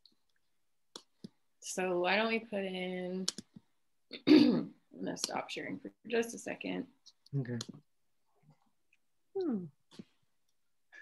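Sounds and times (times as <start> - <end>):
person speaking: 7.3 - 7.8.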